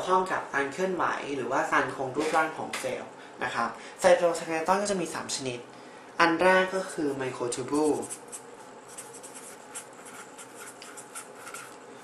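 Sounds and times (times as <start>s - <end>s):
pen scratching on paper: 7.9s - 11.8s.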